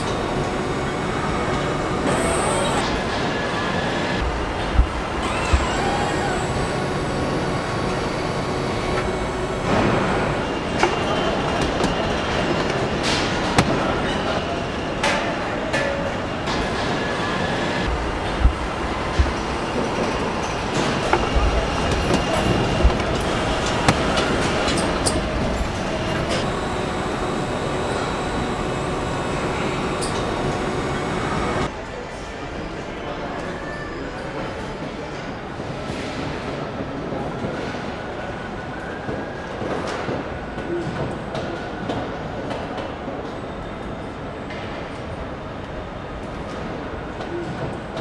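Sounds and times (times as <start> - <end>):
assembly-line machinery running: 0.0 - 15.2, 16.4 - 31.7.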